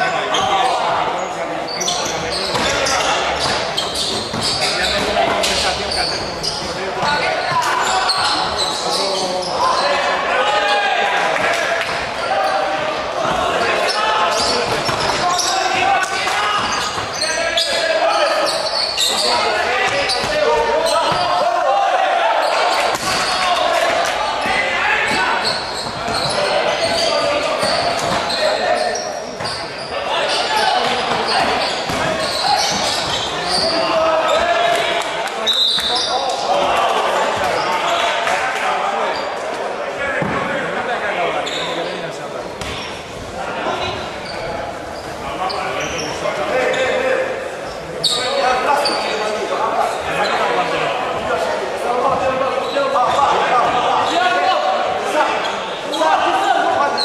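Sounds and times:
shouts and chatter echoing: 0.0s - 57.0s.

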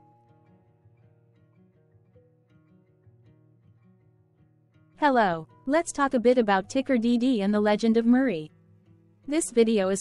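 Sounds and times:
plucked guitar-like background music: 0.0s - 10.0s.

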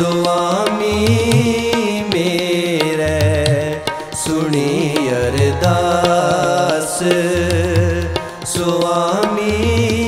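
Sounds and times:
harmonium melody: 0.0s - 10.0s
tabla: 0.0s - 10.0s.

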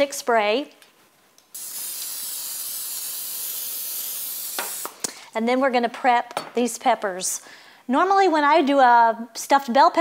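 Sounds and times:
aerosol spray hissing: 1.6s - 5.0s.

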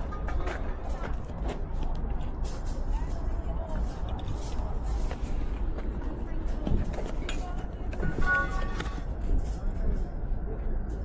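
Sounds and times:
distant voices chatting: 0.0s - 11.0s
low crowd rumble: 0.0s - 11.0s.

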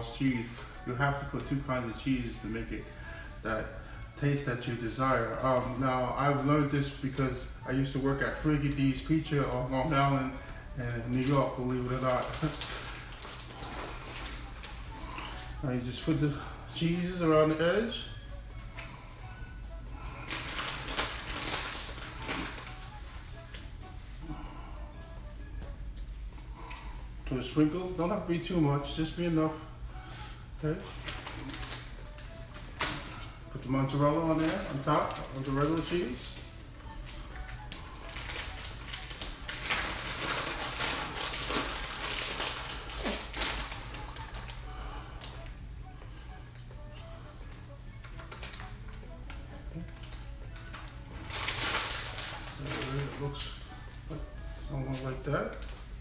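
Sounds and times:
quiet background music: 0.0s - 56.0s
plastic bag crinkling: 5.0s - 18.2s, 18.8s - 24.6s, 30.0s - 45.6s, 46.6s - 56.0s.

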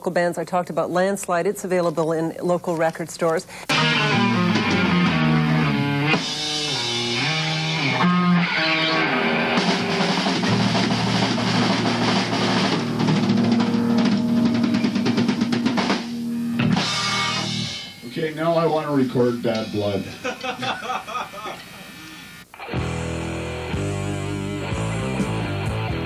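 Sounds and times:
instrumental rock music: 3.7s - 20.7s, 22.3s - 26.0s.

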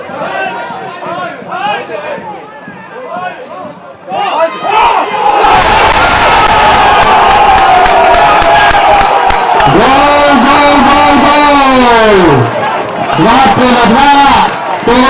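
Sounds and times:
loud crowd noise: 0.0s - 15.0s.

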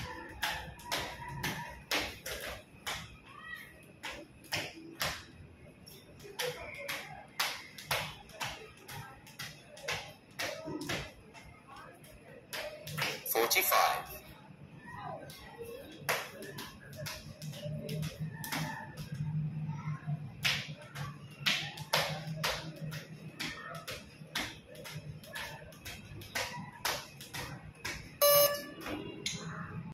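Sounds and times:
skipping rope slapping concrete: 0.1s - 3.2s, 6.2s - 11.2s, 20.4s - 28.2s
short loud beep: 28.2s - 28.8s.

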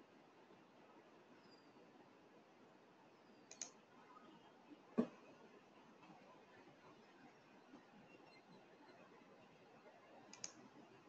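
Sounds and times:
faint clicks: 3.5s - 3.8s, 10.2s - 10.7s.

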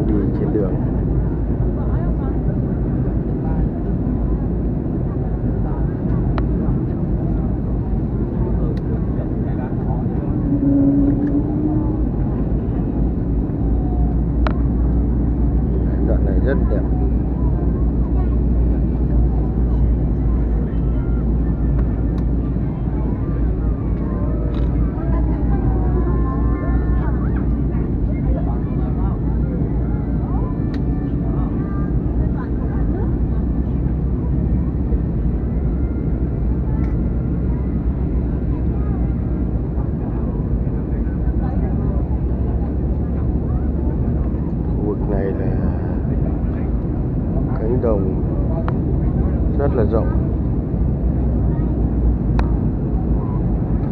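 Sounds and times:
faint voices: 0.0s - 53.9s
jet engine roar in cabin: 0.0s - 53.9s.

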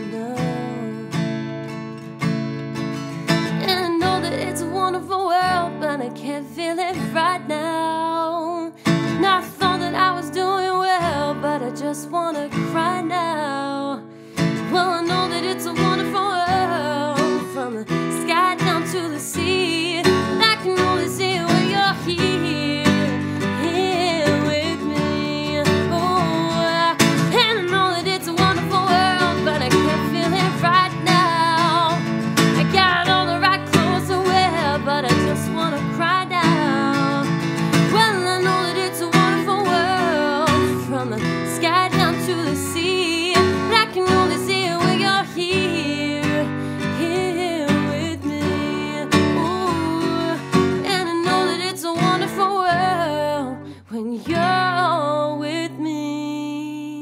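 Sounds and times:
woman singing: 0.0s - 1.6s, 3.1s - 57.0s
acoustic guitar strumming: 0.0s - 53.7s.

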